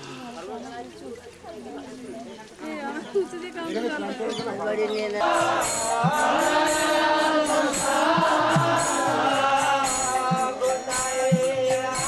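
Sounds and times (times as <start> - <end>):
percussive beat: 5.3 - 12.0.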